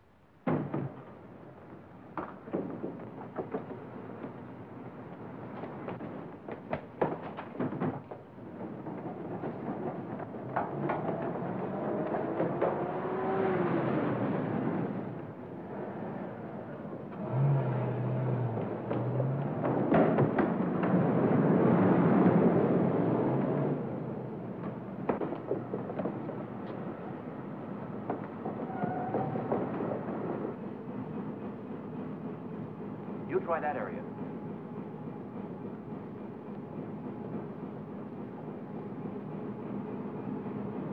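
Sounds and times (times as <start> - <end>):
sharp knocks and clicks: 24.6 - 26.8.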